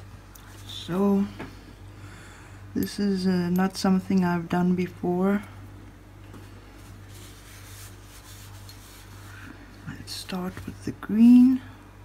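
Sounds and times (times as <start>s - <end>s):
steady low hum: 0.0s - 12.0s
hands rubbing and handling: 6.3s - 9.6s.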